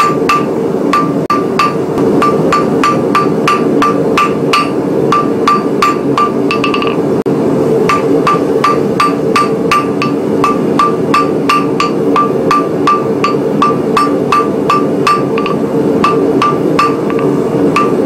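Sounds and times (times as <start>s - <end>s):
hammer ringing on anvil: 0.0s - 7.0s, 7.9s - 18.0s.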